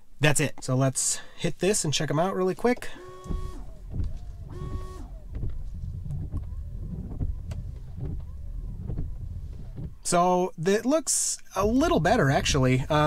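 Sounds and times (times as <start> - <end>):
wiper motor hum: 2.8 - 10.3, 11.6 - 13.0
short whine: 2.9 - 10.1
wiper blades sweeping glass: 3.0 - 10.2.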